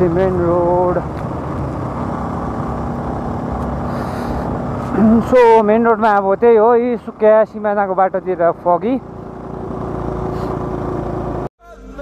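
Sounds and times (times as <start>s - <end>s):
wind rumble: 0.0s - 5.4s
motorcycle engine: 0.0s - 11.5s
music: 11.6s - 12.0s.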